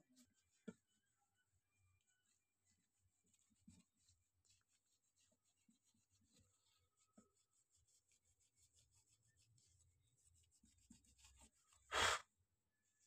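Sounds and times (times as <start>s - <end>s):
hands rubbing on metal heatsink: 2.1s - 12.2s.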